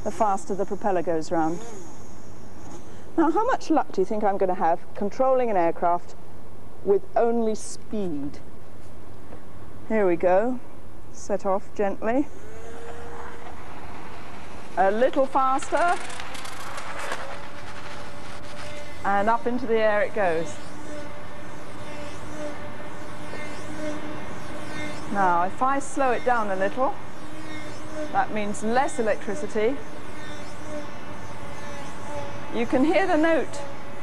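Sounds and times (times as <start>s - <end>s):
steady motor note: 11.9s - 34.0s
model aircraft propeller rushing: 12.0s - 34.0s.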